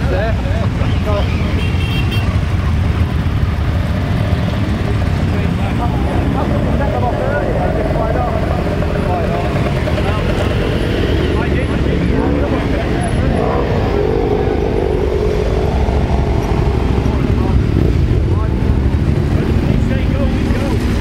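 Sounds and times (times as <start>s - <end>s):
motorcycle revving: 0.0s - 21.0s
motorcycles riding past: 0.0s - 21.0s.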